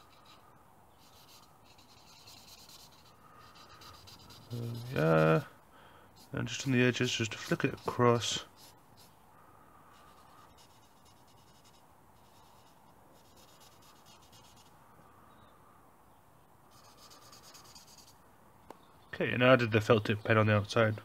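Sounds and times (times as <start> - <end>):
marker pen scratching on paper: 0.0 - 0.4, 1.0 - 5.4, 6.2 - 9.2, 9.9 - 14.7, 16.7 - 18.2.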